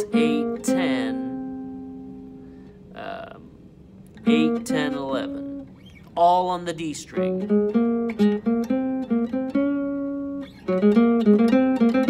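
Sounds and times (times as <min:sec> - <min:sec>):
classical guitar plucked notes: 0:00.0 - 0:06.1, 0:06.9 - 0:12.0.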